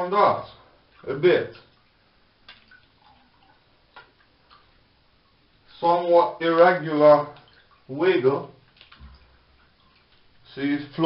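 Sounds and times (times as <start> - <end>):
faint water splashing: 0.0 - 11.0.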